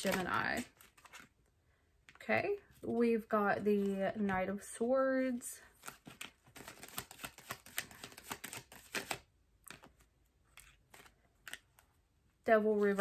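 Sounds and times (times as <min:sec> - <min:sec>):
cards shuffling clicks: 0:00.0 - 0:01.3, 0:05.8 - 0:11.8.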